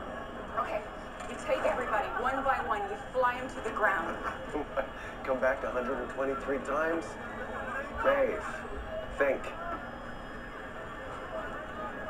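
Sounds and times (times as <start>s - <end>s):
quiet television dialogue: 0.0s - 12.0s
steady low hum: 0.0s - 12.0s.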